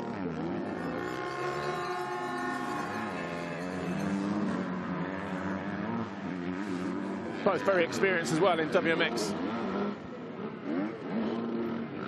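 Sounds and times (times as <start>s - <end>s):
motocross bikes revving: 0.0s - 12.0s.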